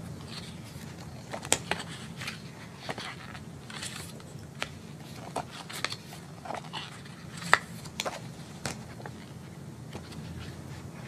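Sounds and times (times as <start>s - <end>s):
steady low hum: 0.0s - 11.0s
papers rustling: 0.2s - 11.0s.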